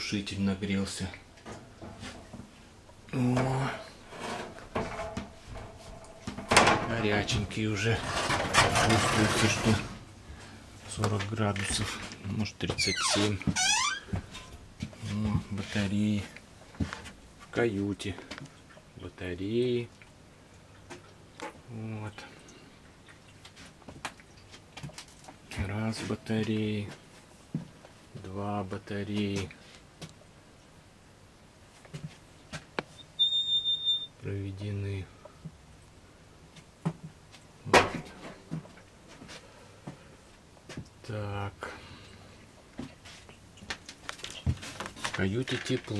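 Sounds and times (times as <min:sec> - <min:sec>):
high-pitched steady tone: 0:33.0 - 0:34.1.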